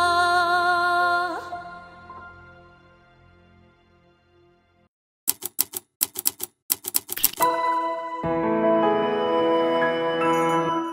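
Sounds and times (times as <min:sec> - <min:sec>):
typewriter key clacks: 0:05.3 - 0:07.4.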